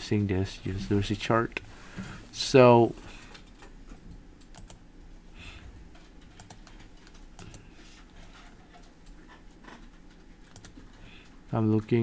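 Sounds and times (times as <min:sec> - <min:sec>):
steady low hum: 0:00.0 - 0:12.0
computer keys clicking: 0:03.3 - 0:04.8, 0:06.0 - 0:07.7, 0:09.8 - 0:12.0.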